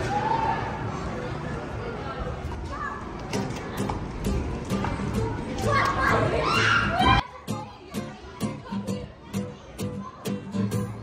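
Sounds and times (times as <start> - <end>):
children playing and shouting: 0.0 - 11.0.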